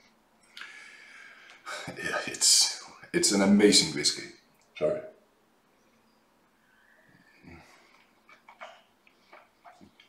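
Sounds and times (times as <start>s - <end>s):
wet lip and tongue smacks: 7.8s - 10.0s.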